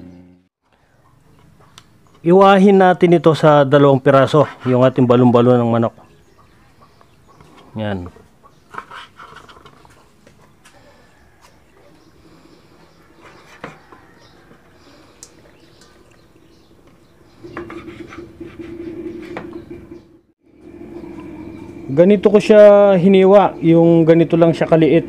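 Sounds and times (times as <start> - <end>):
low hum: 17.4 - 25.0.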